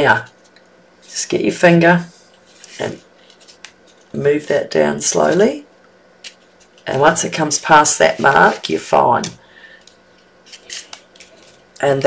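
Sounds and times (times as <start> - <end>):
paper rustling and scraping: 2.1 - 4.2, 6.2 - 11.7.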